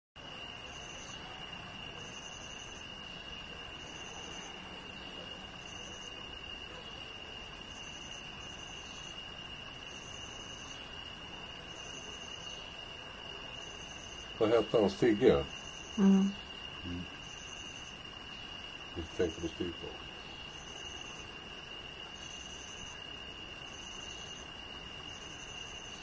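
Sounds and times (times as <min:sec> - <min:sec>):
crickets trilling: 0:00.2 - 0:26.0
steady low hiss: 0:00.2 - 0:26.0.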